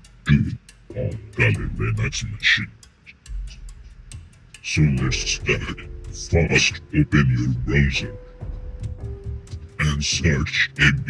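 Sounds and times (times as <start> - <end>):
faint low hum: 0.0 - 11.0
steady ticking: 0.0 - 11.0
man saying a word: 4.7 - 8.2.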